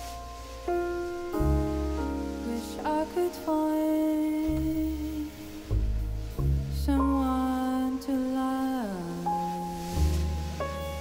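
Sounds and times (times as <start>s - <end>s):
low bass notes: 0.0s - 11.0s
piano: 0.0s - 11.0s.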